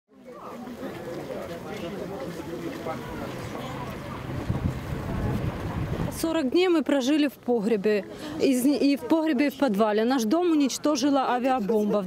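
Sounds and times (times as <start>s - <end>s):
wind buffeting microphone: 3.0s - 6.5s.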